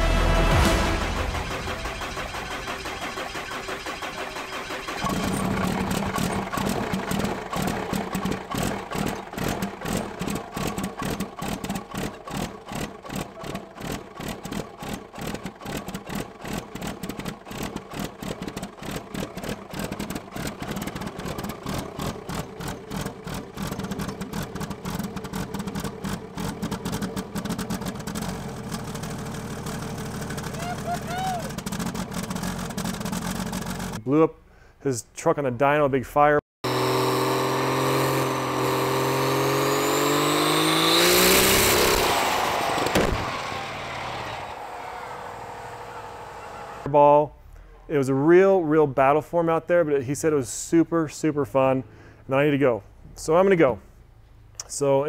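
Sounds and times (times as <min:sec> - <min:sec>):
diesel engine idling: 0:00.0 - 0:34.0, 0:40.8 - 0:46.9.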